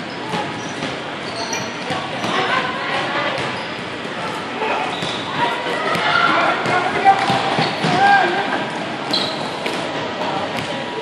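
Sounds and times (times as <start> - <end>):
balls bouncing: 0.3 - 8.2, 9.0 - 10.9.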